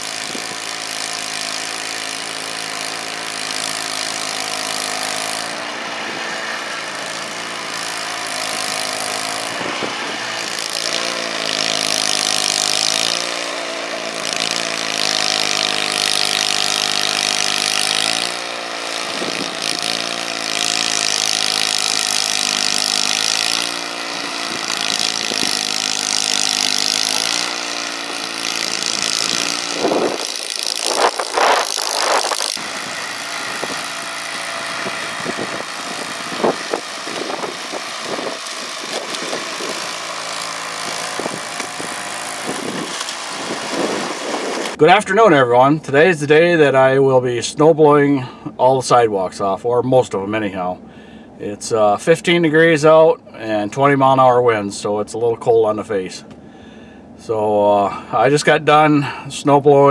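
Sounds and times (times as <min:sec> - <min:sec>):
snowblower engine running: 0:00.0 - 0:46.3, 0:50.6 - 0:51.3, 0:56.2 - 0:58.4.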